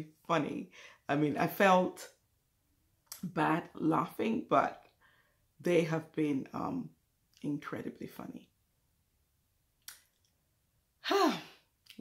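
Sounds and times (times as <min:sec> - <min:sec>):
woman sighing: 0:11.0 - 0:11.6.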